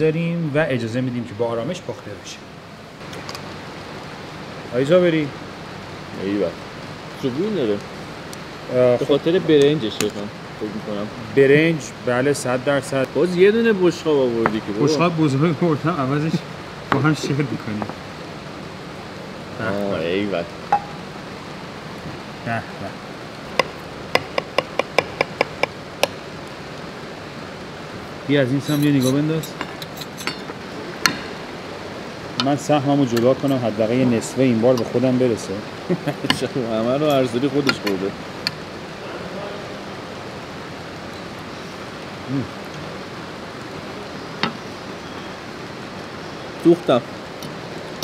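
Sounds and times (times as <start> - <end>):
restaurant room noise: 0.0 - 48.0
cutlery clinking on ceramic plate: 28.7 - 30.5.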